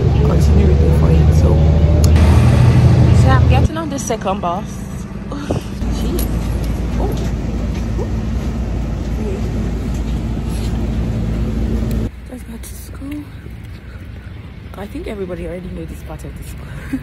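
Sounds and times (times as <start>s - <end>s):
bus engine idling: 0.0s - 17.0s
outdoor background: 0.0s - 17.0s.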